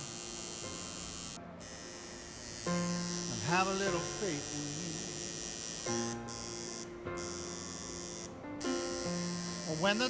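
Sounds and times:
tattoo machine buzzing: 0.0 - 10.0.

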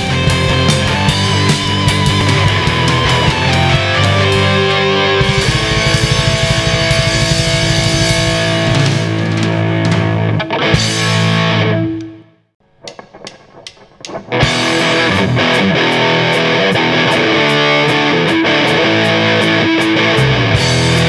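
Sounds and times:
sharp hits: 0.0 - 10.2
bass guitar: 0.0 - 21.0
distorted electric guitar: 0.0 - 21.0
drums: 0.0 - 21.0.

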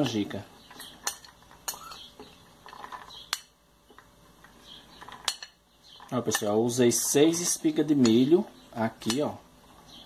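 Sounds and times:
metal spoon scraping a ceramic plate: 0.8 - 2.1.

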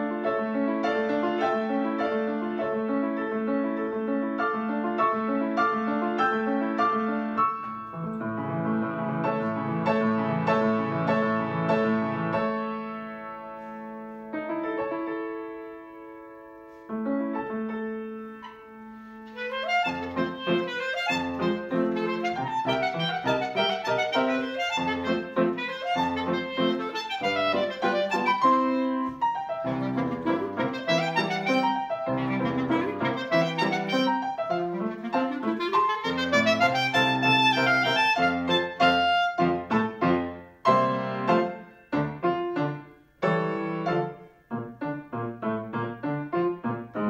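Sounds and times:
piano accompaniment: 0.0 - 47.0
clarinet playing lively melody: 19.2 - 41.7.

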